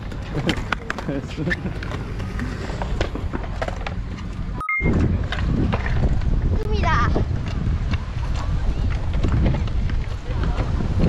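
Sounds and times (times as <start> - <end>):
skateboard clacks: 0.0 - 4.5, 7.1 - 11.0
skateboard wheels rolling on concrete: 0.0 - 11.0
brief beeps: 4.6 - 5.1.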